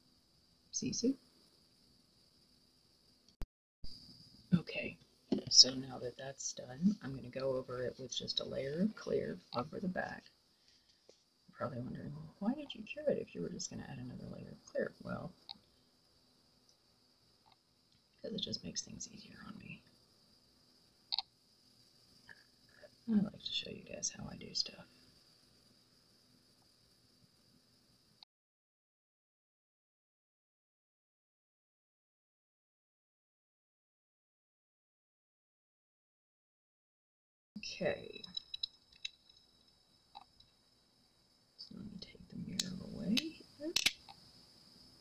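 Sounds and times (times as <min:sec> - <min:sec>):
low mumbled voice: 0:11.6 - 0:15.3.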